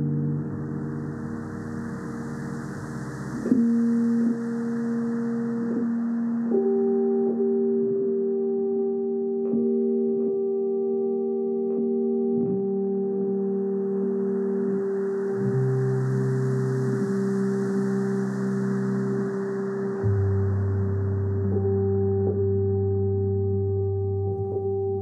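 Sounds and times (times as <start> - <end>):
ambient bell-like music: 0.0 - 25.0.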